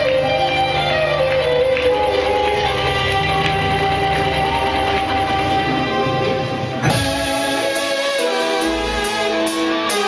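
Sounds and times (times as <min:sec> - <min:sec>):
sharp hit: 0:06.8 - 0:07.9.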